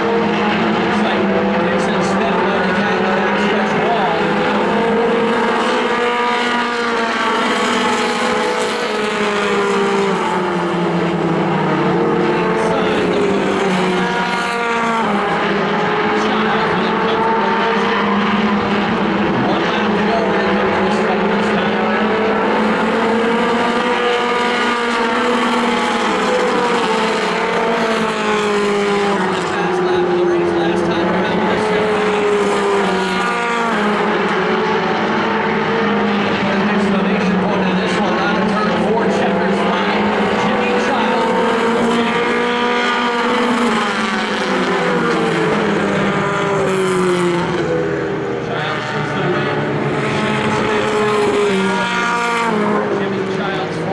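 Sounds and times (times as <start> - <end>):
race car engines: 0.0 - 53.9.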